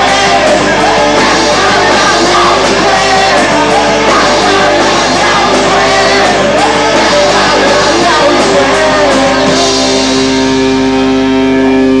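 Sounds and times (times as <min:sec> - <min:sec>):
rock band holding closing chord: 0:00.0 - 0:12.0.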